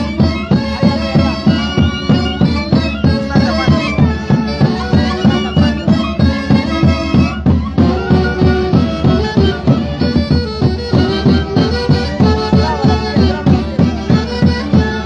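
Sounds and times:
bass drum beat: 0.0 - 15.0
saxophones and clarinets melody: 0.0 - 15.0
violin: 0.0 - 15.0.

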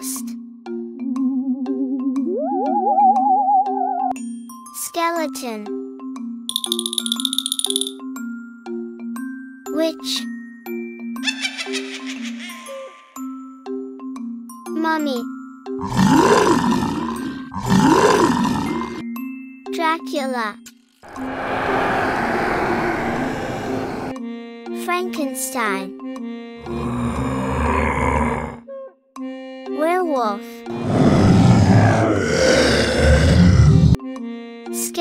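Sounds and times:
children's background music: 0.0 - 15.7, 19.0 - 20.9, 24.2 - 27.0, 29.2 - 31.1, 33.9 - 35.0
monster groaning: 15.8 - 19.0, 21.1 - 24.2, 26.6 - 28.6, 30.7 - 34.0.

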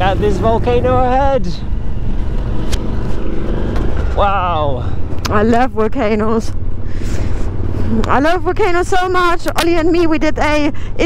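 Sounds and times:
motorcycle engine rumble: 0.0 - 11.0
wind: 0.0 - 11.0.

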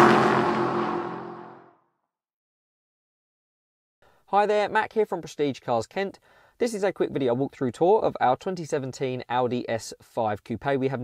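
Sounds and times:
car engine sweeping past: 0.0 - 1.6.

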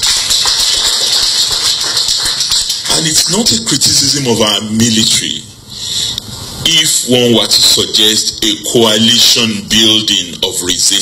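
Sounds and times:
steady loud hiss: 0.0 - 11.0.

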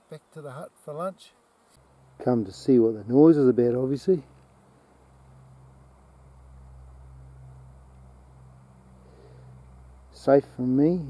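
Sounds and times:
faint low hum: 0.0 - 11.0
light hiss: 0.0 - 11.0.

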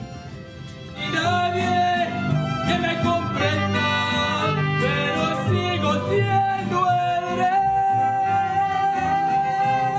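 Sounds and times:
guitar accompaniment: 0.0 - 9.9.

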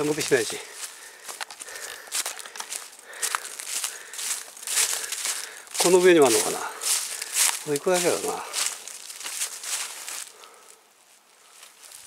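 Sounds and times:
man speaking: 0.0 - 0.8, 5.8 - 6.9, 7.6 - 8.7
footsteps on dry leaves: 0.0 - 12.0.

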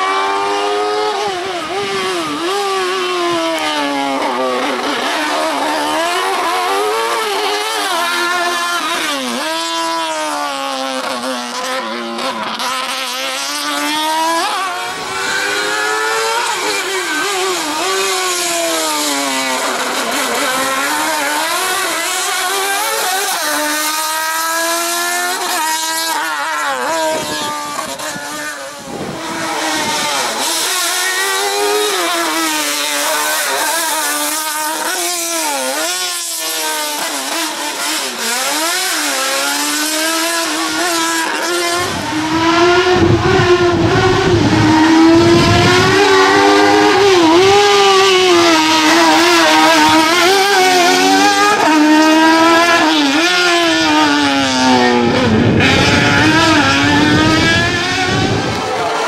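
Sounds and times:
race car engine revving hard: 0.0 - 59.0.

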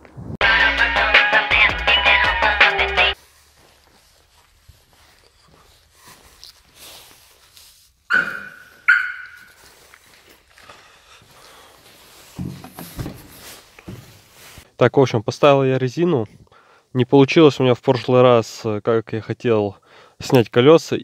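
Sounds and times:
dog barking: 8.1 - 9.5.

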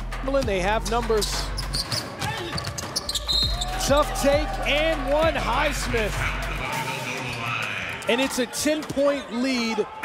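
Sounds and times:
shoe squeak: 1.5 - 3.8.

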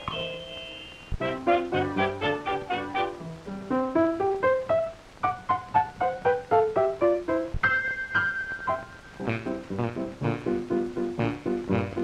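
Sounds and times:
piano melody: 0.0 - 12.0.

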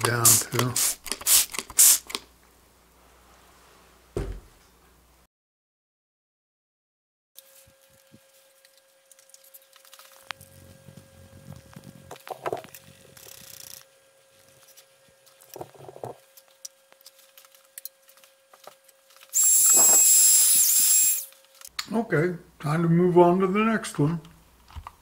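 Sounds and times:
soft knocks: 4.2 - 4.6
faint steady hum: 7.4 - 25.0
electric tool whining: 19.3 - 21.3.

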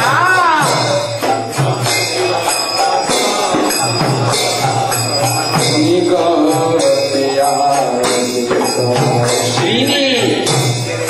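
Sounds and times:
jingling percussion: 0.0 - 11.0
person chanting a mantra melody: 0.0 - 11.0.

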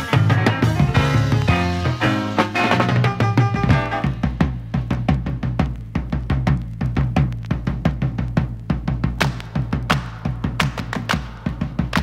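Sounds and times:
bass line: 0.0 - 12.0
drum kit quick rhythm: 0.0 - 12.0.

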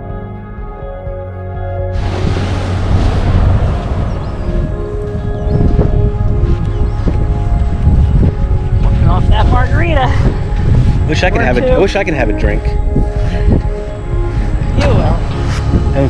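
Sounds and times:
wind buffeting microphone: 2.0 - 16.0
person speaking: 11.3 - 11.9.

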